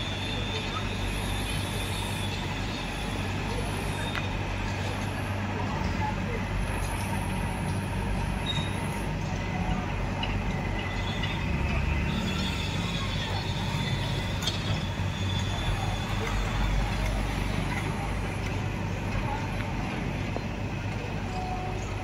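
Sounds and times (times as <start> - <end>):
crowd chatter: 0.0 - 22.0
heavy machinery engines rumbling: 0.0 - 22.0.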